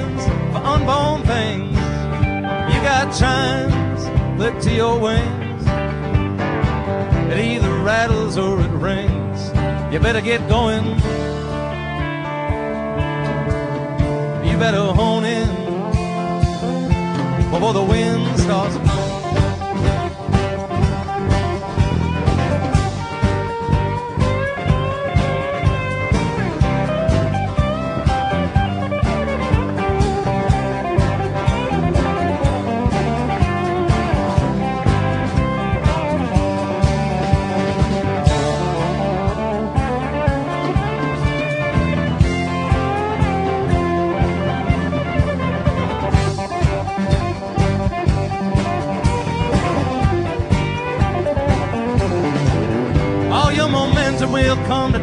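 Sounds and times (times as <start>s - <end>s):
bass line: 0.0s - 55.0s
drum kit beat: 0.0s - 55.0s
live band playing: 0.0s - 55.0s
sliding lead guitar line: 0.0s - 55.0s
strummed guitars: 0.0s - 55.0s.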